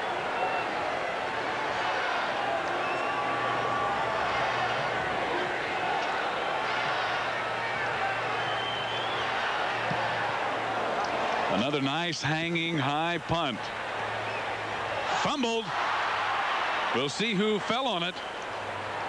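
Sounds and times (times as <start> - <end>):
crowd din of voices: 0.0 - 19.0.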